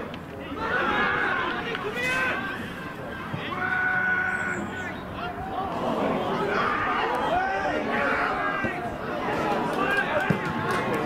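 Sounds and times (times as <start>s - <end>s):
players and spectators shouting: 0.2s - 11.0s.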